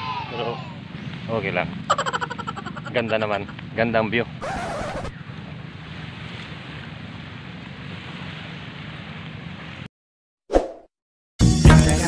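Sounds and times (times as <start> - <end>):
outdoor background noise: 0.0 - 9.9
music with a strong beat: 11.4 - 12.0.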